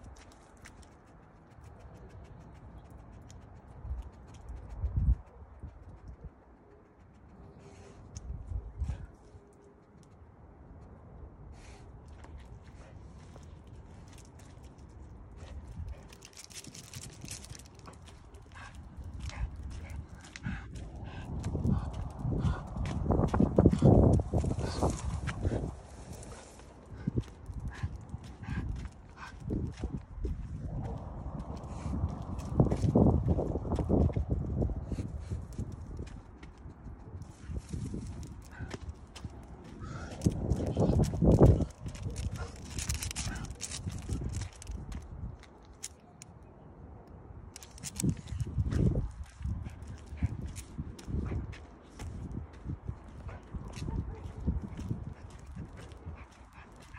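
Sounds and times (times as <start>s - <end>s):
footsteps on asphalt: 12.1s - 34.3s, 37.4s - 45.9s.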